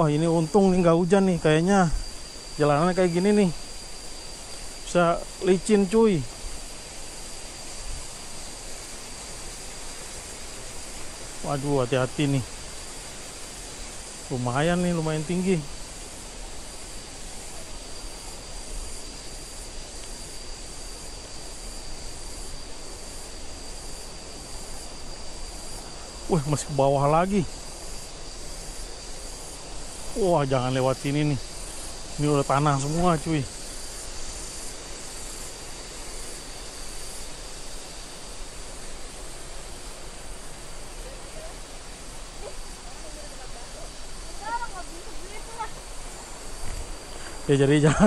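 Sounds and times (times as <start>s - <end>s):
crickets droning: 0.0s - 48.0s
insects calling: 0.0s - 48.0s
rushing hiss: 0.0s - 48.0s.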